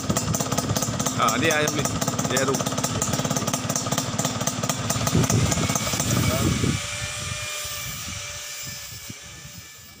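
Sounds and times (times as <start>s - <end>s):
motorcycle engine idling: 0.0s - 7.2s.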